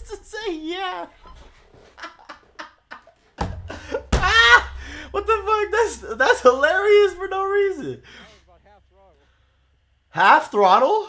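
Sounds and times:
man laughing: 0:01.4 - 0:08.6
low rumble: 0:03.6 - 0:10.1.

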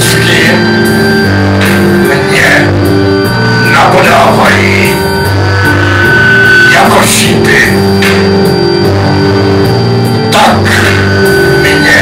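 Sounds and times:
bowed strings holding low notes: 0:00.0 - 0:12.0.

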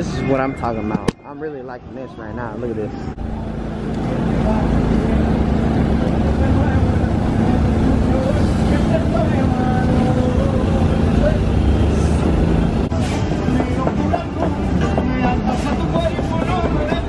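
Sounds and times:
low engine rumble: 0:02.9 - 0:17.0.

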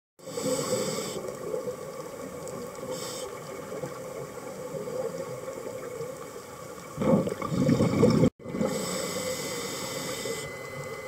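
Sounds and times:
scuba regulator hiss: 0:00.2 - 0:01.2, 0:02.9 - 0:03.4, 0:08.7 - 0:10.4
underwater water rushing: 0:00.2 - 0:11.0.

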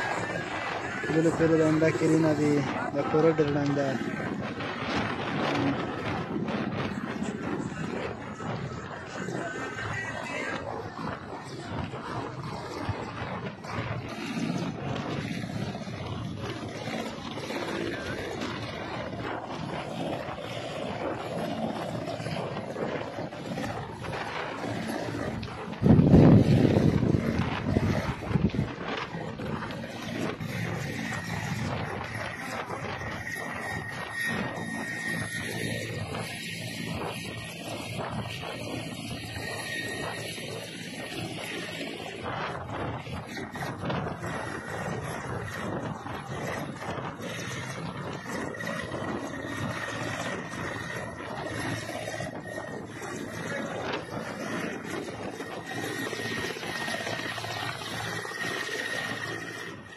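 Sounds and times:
helicopter rotor and engine noise: 0:00.0 - 0:59.9
high turbine whine: 0:00.0 - 0:59.9.

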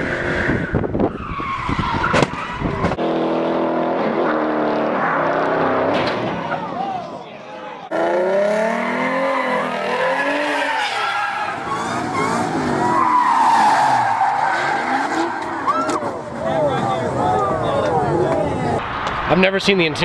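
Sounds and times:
car engines revving: 0:00.0 - 0:20.0
tyres squealing: 0:08.8 - 0:16.1.

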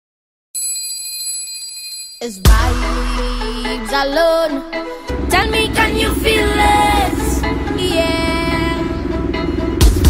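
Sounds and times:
bell-like chime ringing: 0:00.6 - 0:02.6.

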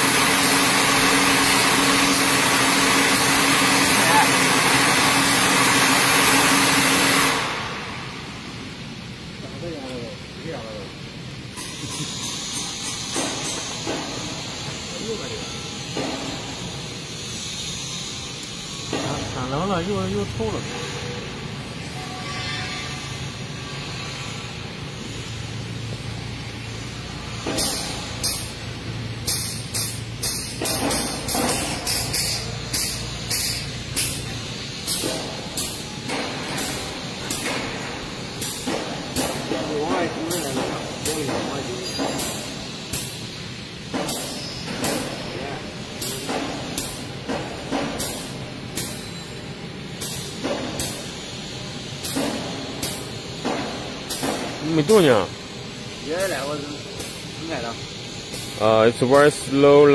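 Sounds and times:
air grease gun hissing: 0:00.0 - 0:08.0, 0:26.5 - 0:49.2, 0:49.9 - 0:59.6.

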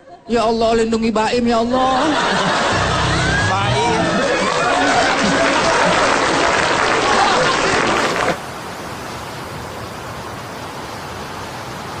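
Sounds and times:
studio audience laughing: 0:01.8 - 0:08.4
audience clapping: 0:03.1 - 0:08.4
steady hiss: 0:07.3 - 0:12.0.

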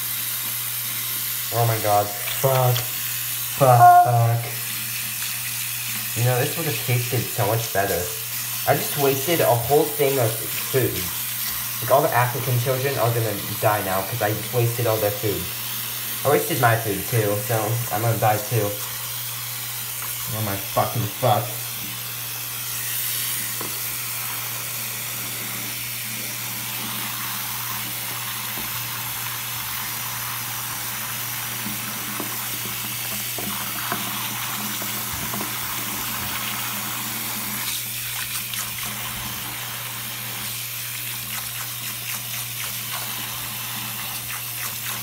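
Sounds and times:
tap running into sink: 0:31.5 - 0:36.8
water splashing: 0:37.6 - 0:45.0.

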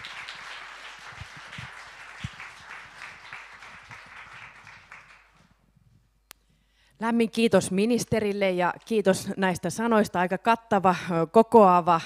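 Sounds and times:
audience applauding: 0:00.0 - 0:05.6.

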